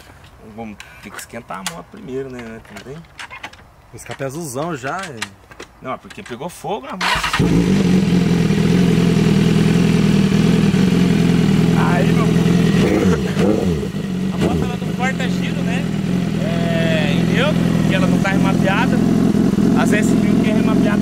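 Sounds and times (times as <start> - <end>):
motorcycle engine starting and idling: 7.0 - 21.0.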